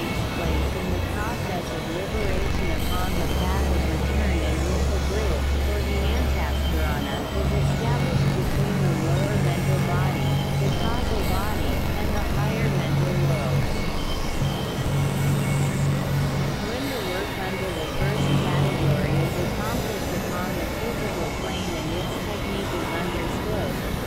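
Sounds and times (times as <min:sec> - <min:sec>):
high sweeping glides: 0:00.0 - 0:24.0
low synthesizer drone: 0:00.0 - 0:24.0
warbling synthesizer tones: 0:00.0 - 0:24.0.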